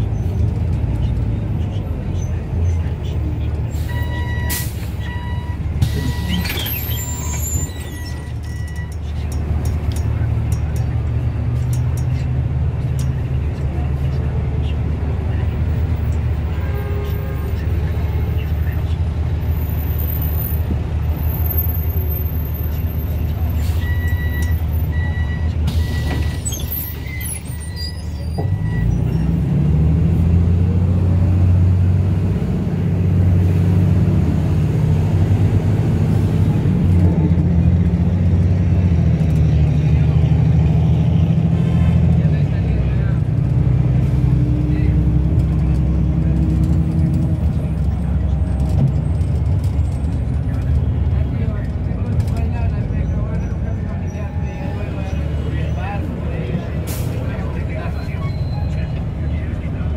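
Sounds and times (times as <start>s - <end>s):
bus engine pulling away: 0.0s - 59.9s.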